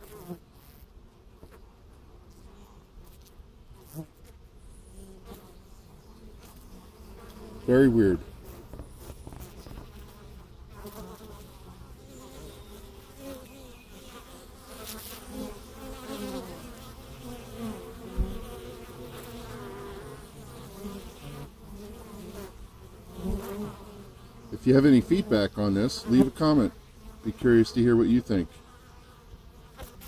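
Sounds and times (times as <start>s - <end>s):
honey bees buzzing: 0.0s - 30.0s.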